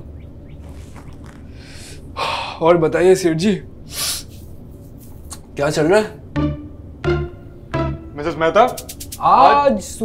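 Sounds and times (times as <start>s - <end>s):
man breathing: 0.7s - 2.6s.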